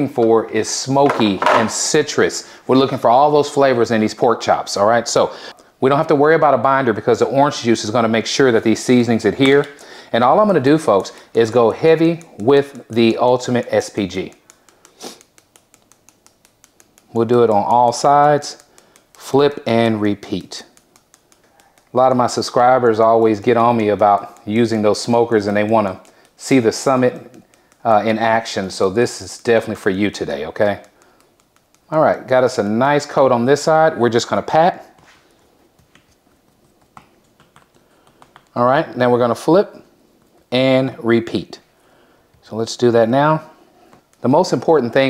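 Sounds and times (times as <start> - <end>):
grains ticking on meat: 7.0 - 45.0
shaker rustle: 7.6 - 41.0.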